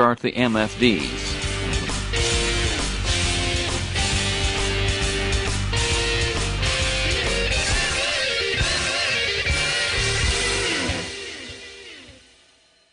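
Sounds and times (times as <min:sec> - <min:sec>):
background music with electric guitar: 0:00.0 - 0:12.4.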